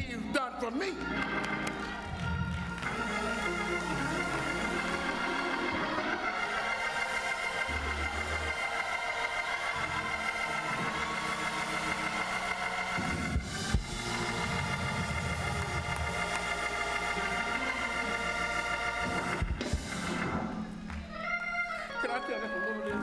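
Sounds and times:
church organ chords: 1.0s - 20.9s.

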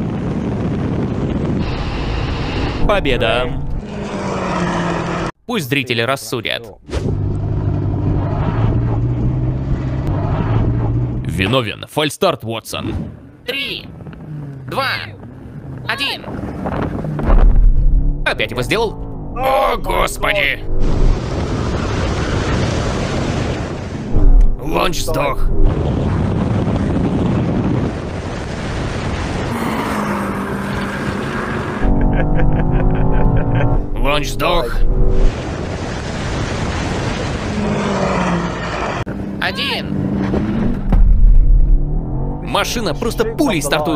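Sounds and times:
car engines accelerating: 1.6s - 5.4s, 7.0s - 11.6s, 13.0s - 43.9s
car engines idling: 37.5s - 43.9s.

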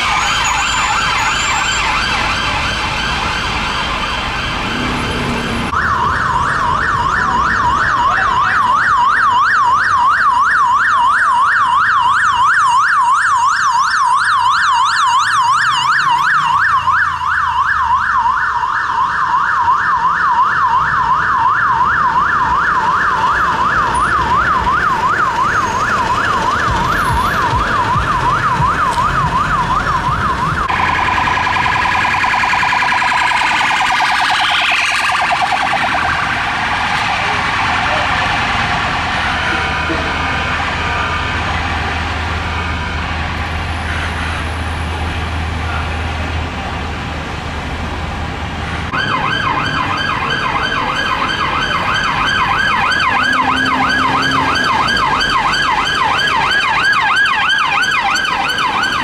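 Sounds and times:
emergency siren yelping: 0.0s - 46.3s, 48.9s - 59.0s
traffic rumble: 0.0s - 59.0s.

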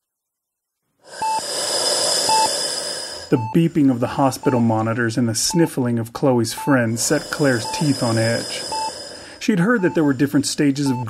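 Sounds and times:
patient monitor beeping: 1.1s - 11.0s.

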